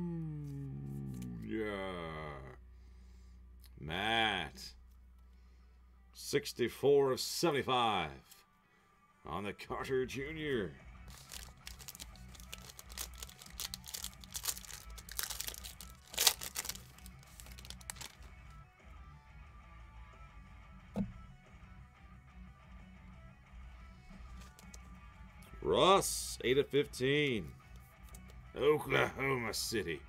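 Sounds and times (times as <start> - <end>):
low background music: 0.0 - 30.0
wrapper crinkling and tearing: 11.1 - 18.3, 24.3 - 24.8.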